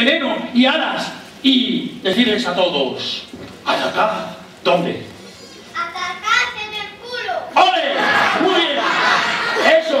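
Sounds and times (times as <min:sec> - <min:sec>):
child calling out: 0:05.8 - 0:07.6.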